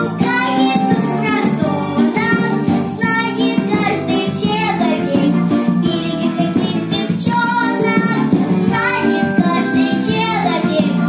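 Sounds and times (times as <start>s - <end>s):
girl singing with vibrato: 0.0s - 11.0s
pop backing track with steady beat: 0.0s - 11.0s.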